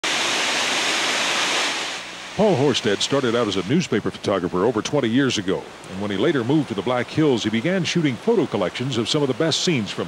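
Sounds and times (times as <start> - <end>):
waterfall rushing: 0.0 - 4.3.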